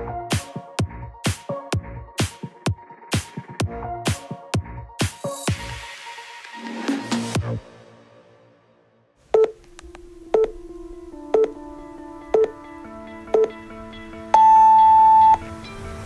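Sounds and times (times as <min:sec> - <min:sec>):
short low timer beeps: 0:09.4 - 0:09.6, 0:12.4 - 0:12.6, 0:13.4 - 0:13.6
soft sustained music chords: 0:09.6 - 0:16.0
long high timer beep: 0:12.3 - 0:12.6, 0:13.3 - 0:13.6, 0:14.4 - 0:15.4.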